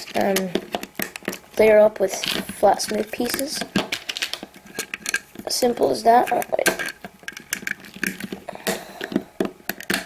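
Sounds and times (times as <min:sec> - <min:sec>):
plastic bricks clicking: 0:00.0 - 0:10.0.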